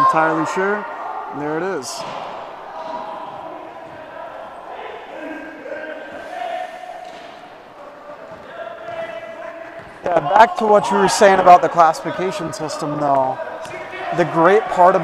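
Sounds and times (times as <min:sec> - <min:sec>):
players calling out: 0:00.0 - 0:15.0.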